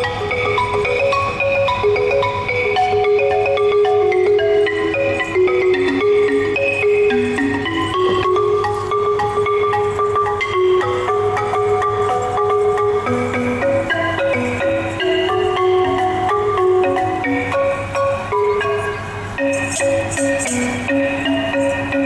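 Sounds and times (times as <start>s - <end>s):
wooden xylophone melody: 0.0s - 22.0s
hand drum playing: 0.5s - 18.6s.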